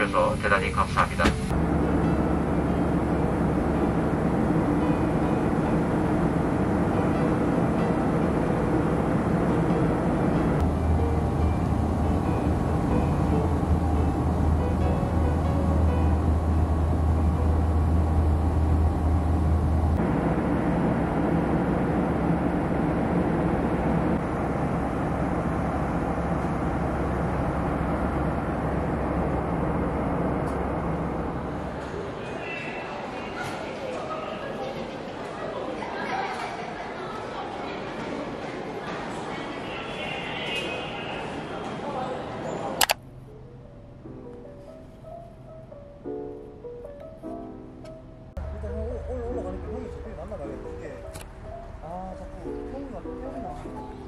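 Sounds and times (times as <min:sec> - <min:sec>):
terminal hubbub with voices: 0:00.0 - 0:17.7, 0:24.2 - 0:43.0, 0:48.4 - 0:54.0
jet engine cabin rush: 0:00.0 - 0:34.3
soft piano music: 0:01.5 - 0:20.0, 0:43.0 - 0:54.0.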